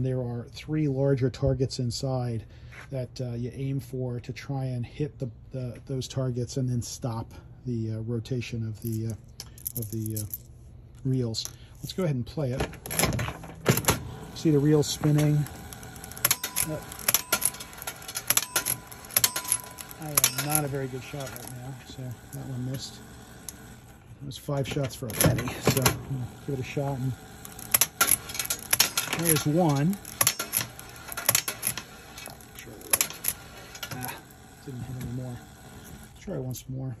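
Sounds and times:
clockwork reels spinning: 12.8 - 24.2, 25.0 - 36.5
metallic clicks and clacks: 15.0 - 21.7, 27.4 - 34.1.

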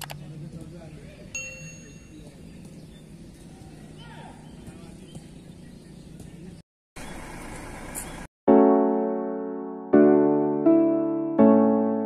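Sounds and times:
sharp metallic ding: 1.4 - 2.4.

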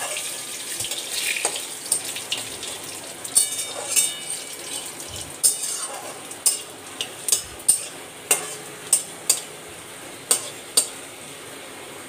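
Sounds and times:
food sizzling: 0.0 - 12.0
metal spatula scraping pan: 3.4 - 9.5.

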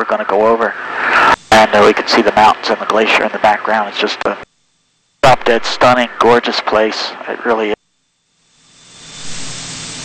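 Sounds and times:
airplane cockpit hiss: 0.5 - 4.4, 8.9 - 10.0.

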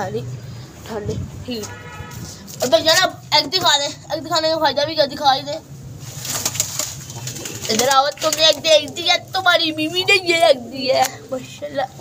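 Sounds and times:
pigeons cooing: 6.4 - 11.2.

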